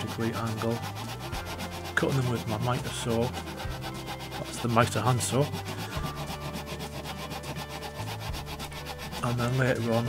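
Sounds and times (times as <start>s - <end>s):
hand saw cutting wood: 0.0s - 10.0s.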